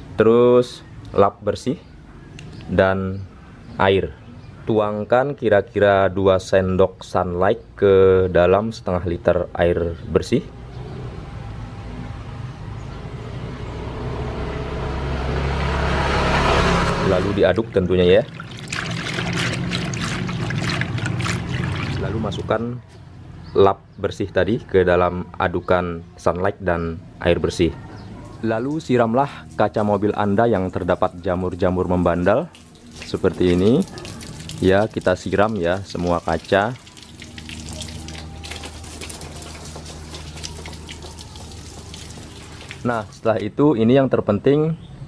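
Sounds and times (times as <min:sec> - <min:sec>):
hand swishing soapy water: 0:18.2 - 0:22.4, 0:32.0 - 0:43.2.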